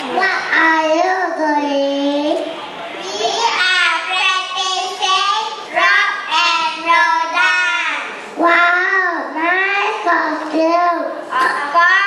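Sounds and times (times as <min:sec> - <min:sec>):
child singing into microphone: 0:06.0 - 0:12.0.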